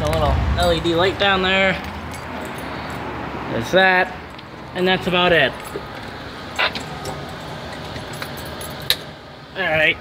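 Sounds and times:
steady background noise: 0:00.0 - 0:10.0.

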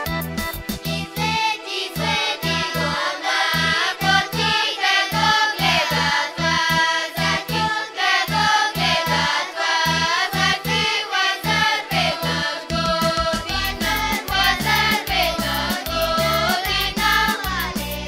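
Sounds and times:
children's choir singing folk song: 0:00.8 - 0:18.0
steady low beat: 0:12.7 - 0:17.9.

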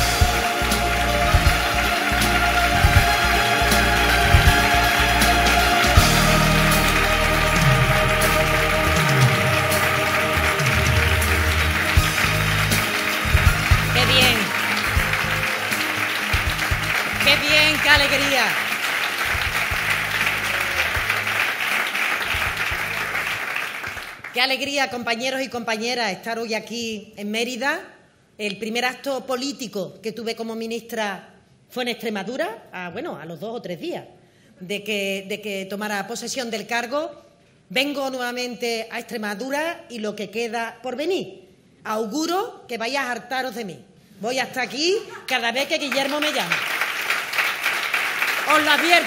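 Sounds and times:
loud music in a hall: 0:00.0 - 0:24.2
audience applauding: 0:00.0 - 0:24.4, 0:45.2 - 0:49.0.

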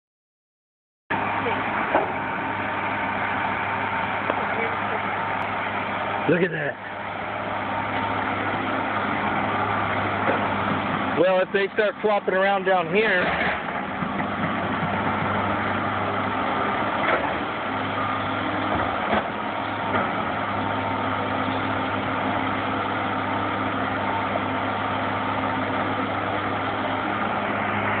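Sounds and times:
excavator diesel engine: 0:01.1 - 0:28.0.

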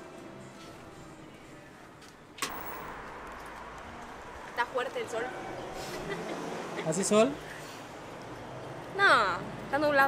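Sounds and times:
street noise with low rumble: 0:00.0 - 0:10.0.

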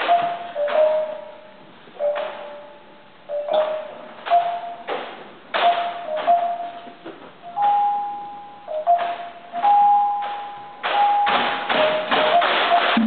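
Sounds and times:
sharp percussive clacks: 0:10.2 - 0:13.0.

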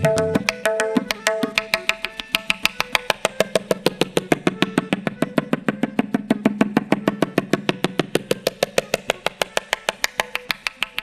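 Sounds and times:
tabla treble drum strokes: 0:00.0 - 0:11.0.

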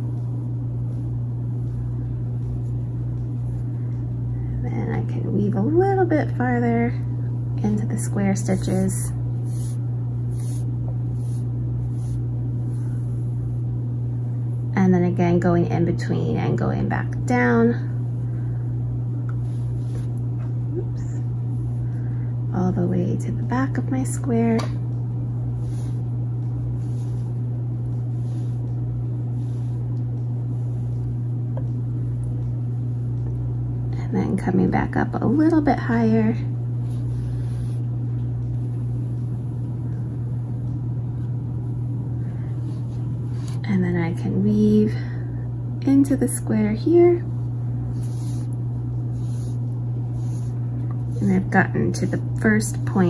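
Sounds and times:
steady low hum: 0:00.0 - 0:53.0
yarn swishing through stitches: 0:08.4 - 0:13.4
yarn rustling through fabric: 0:08.4 - 0:13.6, 0:19.4 - 0:20.4, 0:25.4 - 0:32.1, 0:36.8 - 0:39.6, 0:47.8 - 0:53.0.

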